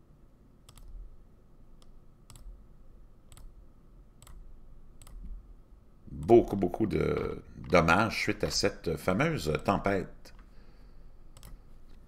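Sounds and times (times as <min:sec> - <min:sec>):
computer mouse clicking: 0:00.6 - 0:01.0, 0:01.8 - 0:02.6, 0:03.3 - 0:03.6, 0:04.2 - 0:05.4, 0:11.3 - 0:12.0.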